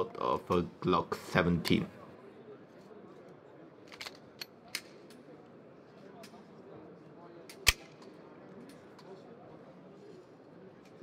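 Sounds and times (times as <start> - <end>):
low murmur of voices: 0.0 - 11.0
pistol slide metallic clicks: 7.5 - 8.1.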